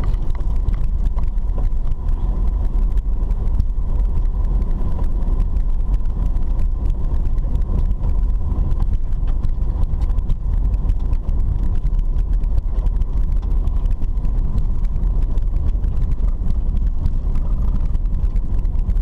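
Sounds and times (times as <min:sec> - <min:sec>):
engine and tyres rumbling: 0:00.0 - 0:19.0
ticks and rattles from rough road: 0:00.0 - 0:19.0.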